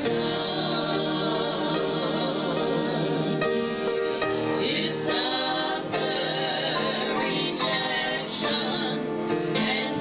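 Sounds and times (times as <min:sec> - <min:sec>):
group singing gospel song: 0:00.0 - 0:10.0.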